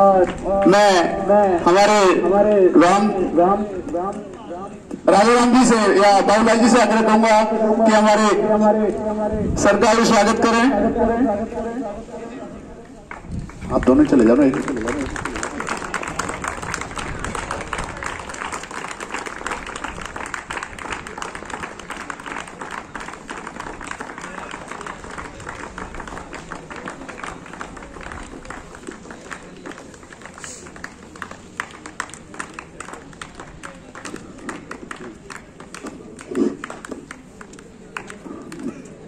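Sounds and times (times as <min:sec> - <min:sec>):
group of people clapping: 0:00.0 - 0:02.0, 0:03.8 - 0:05.5, 0:12.8 - 0:39.0.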